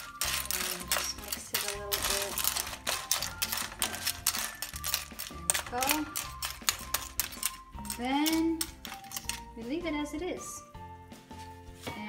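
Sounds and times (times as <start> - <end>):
metal spoon clinking against shells: 0.0 - 9.5
background music: 0.0 - 12.0.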